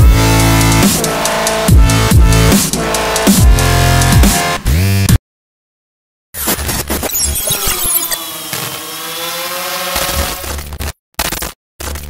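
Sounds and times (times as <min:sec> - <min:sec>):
quadcopter drone buzz: 0:07.2 - 0:10.6.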